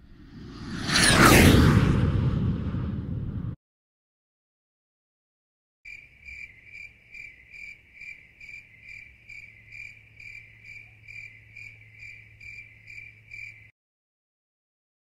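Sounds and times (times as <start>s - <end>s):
insect chirping: 5.9s - 13.7s.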